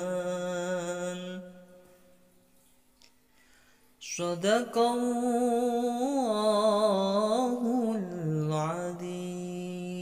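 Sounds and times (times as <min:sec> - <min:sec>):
man reciting melodically: 0:00.0 - 0:01.9, 0:04.0 - 0:10.0.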